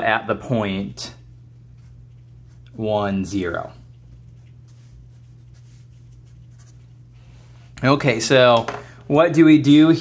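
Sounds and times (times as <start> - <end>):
steady low hum: 0.0 - 10.0
marker scratching on paper: 3.9 - 7.0.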